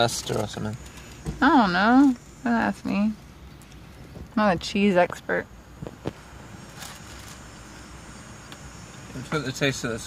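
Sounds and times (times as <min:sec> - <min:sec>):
low rumble of street traffic: 0:00.0 - 0:10.0
soft rustle: 0:05.8 - 0:07.5.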